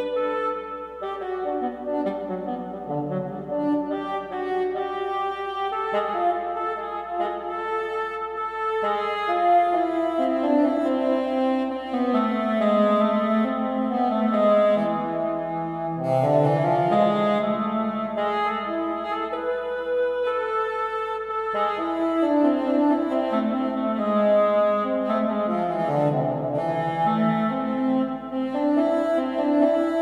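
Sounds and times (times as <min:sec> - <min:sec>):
double-reed instrument melody: 0:00.0 - 0:30.0.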